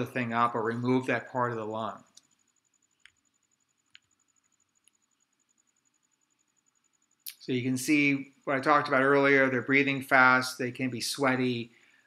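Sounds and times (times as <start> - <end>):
computer mouse clicking: 2.1 - 5.2.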